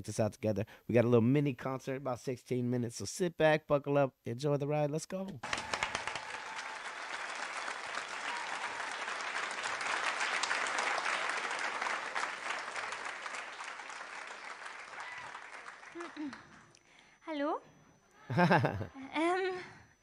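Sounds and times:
audience applauding: 5.4s - 16.5s.

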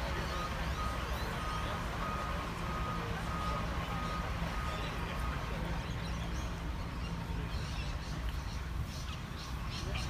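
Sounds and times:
reversing alarm beeping: 0.0s - 5.8s
low engine rumble: 0.0s - 10.0s.

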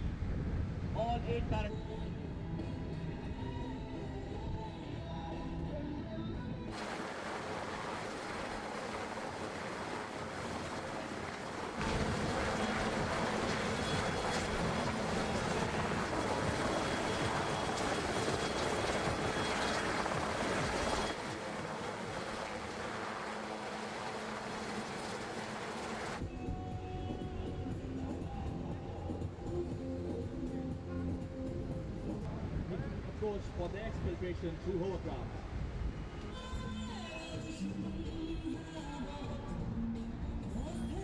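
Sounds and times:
helicopter hovering: 6.7s - 26.3s.

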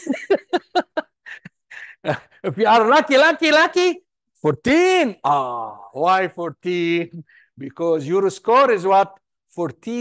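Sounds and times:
person laughing: 0.0s - 2.4s.

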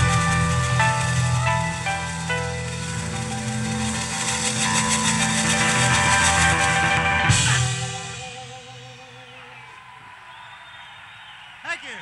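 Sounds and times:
bass: 0.0s - 10.0s
electric guitar notes: 0.0s - 10.6s
drums: 0.0s - 12.0s.

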